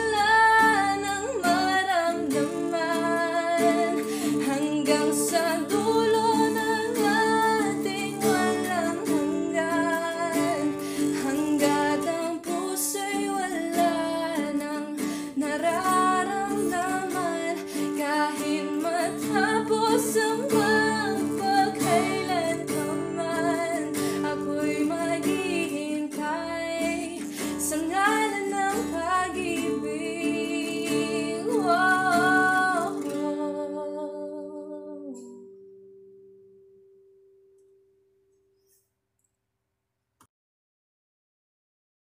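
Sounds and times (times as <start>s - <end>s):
woman singing pop ballad: 0.0s - 35.5s
acoustic guitar strumming chords: 0.0s - 38.0s.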